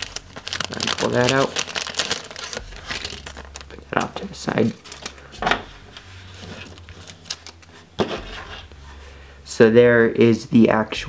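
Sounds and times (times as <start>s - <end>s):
plastic handling sounds: 0.0s - 9.1s.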